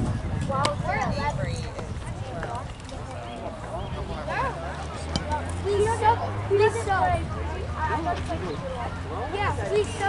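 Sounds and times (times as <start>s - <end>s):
voices calling out: 0.5s - 10.0s.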